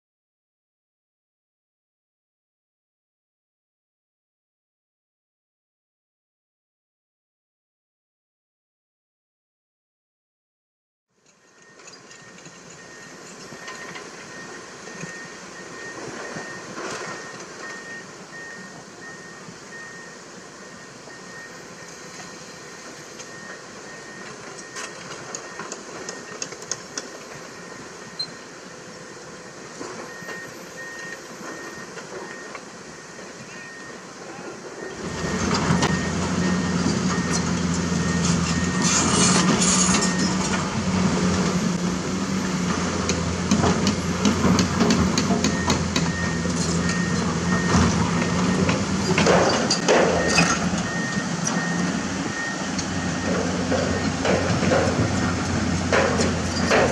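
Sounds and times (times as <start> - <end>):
excavator engine running: 11.3 - 56.9
high beep: 30.1 - 34.0
steel tracks clanking: 34.4 - 56.9.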